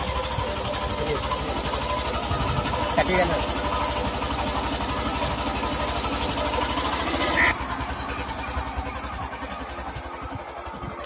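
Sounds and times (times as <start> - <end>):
motorcycle engine pulling away: 0.0 - 11.0.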